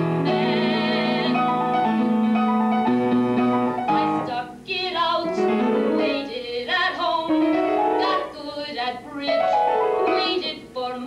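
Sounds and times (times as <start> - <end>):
piano accompaniment: 0.0 - 10.7
woman singing a show tune: 0.3 - 1.7, 3.9 - 7.4, 8.0 - 11.0.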